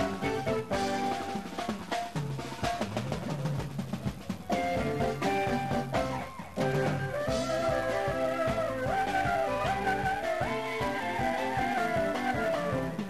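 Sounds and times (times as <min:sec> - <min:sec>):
melodic instruments: 0:00.0 - 0:03.0, 0:04.5 - 0:13.0
dance-band music: 0:00.0 - 0:13.0
drum kit: 0:00.0 - 0:13.0.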